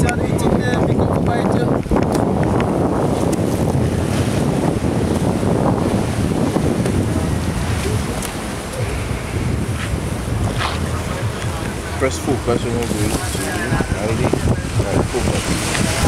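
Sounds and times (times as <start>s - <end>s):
surf washing on shore: 0.0s - 16.0s
wind buffeting microphone: 0.0s - 16.0s.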